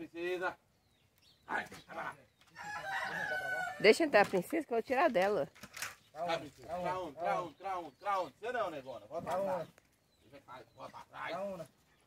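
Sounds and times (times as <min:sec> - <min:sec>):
rooster crowing: 0:02.6 - 0:04.0.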